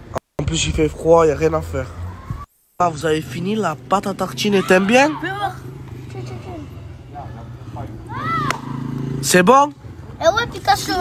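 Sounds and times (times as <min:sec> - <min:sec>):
boys' voices: 0:02.9 - 0:11.0.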